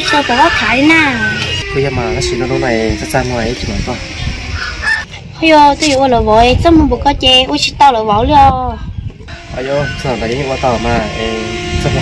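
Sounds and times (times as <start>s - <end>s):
rooster crowing: 0.0s - 3.2s, 4.4s - 5.1s.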